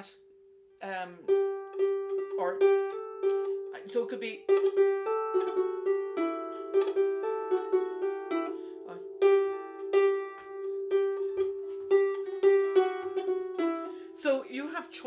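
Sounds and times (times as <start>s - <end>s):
harp playing jig melody: 1.2s - 15.0s.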